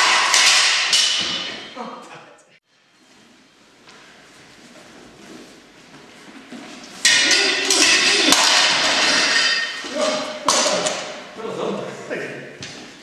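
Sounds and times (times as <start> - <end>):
steel swords clashing: 0.0 - 1.8, 7.0 - 11.3.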